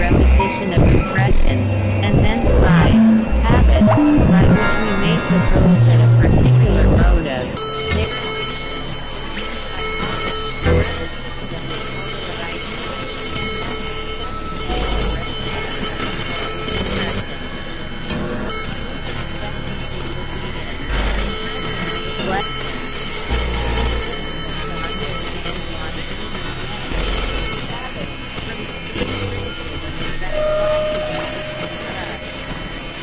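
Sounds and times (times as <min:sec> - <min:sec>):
deep low pulses: 0:00.0 - 0:33.0
synthesizer drones with high tones: 0:00.0 - 0:33.0.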